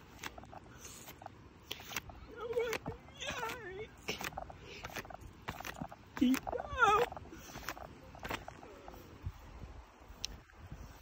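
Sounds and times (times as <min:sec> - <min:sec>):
person's wavering vocal cry: 0:06.3 - 0:07.3.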